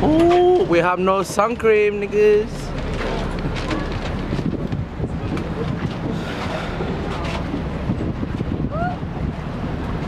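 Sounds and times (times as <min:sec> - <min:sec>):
boat engine: 0:00.0 - 0:10.0
water wash: 0:00.0 - 0:10.0
wind rumbling on microphone: 0:00.0 - 0:10.0.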